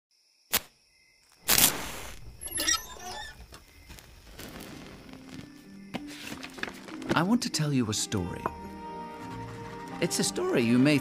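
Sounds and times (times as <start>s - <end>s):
match burning: 1.4s - 2.4s, 3.2s - 6.9s
lantern metal squeak and rattle: 2.1s - 7.2s.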